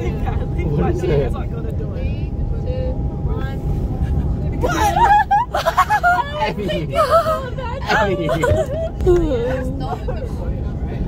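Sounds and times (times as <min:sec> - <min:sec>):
bus engine rumble from inside: 0:00.0 - 0:11.0
women laughing: 0:04.1 - 0:10.5
women talking: 0:04.2 - 0:10.8.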